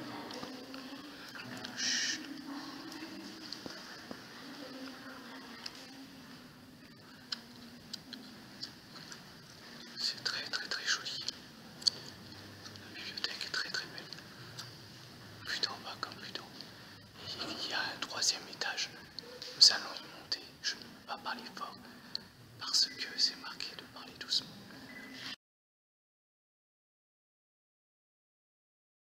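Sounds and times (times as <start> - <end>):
people whispering: 0.0 - 25.4.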